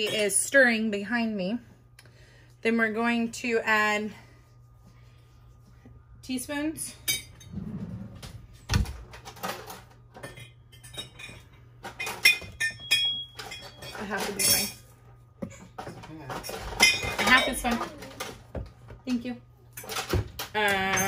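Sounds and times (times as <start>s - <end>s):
metal utensils clinking on dishes: 9.2s - 14.9s, 15.8s - 18.4s.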